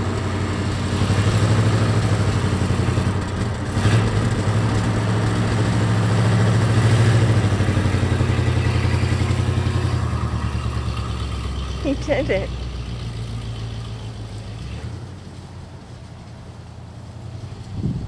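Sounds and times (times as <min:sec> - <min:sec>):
car engine pulling away: 0:00.0 - 0:18.0.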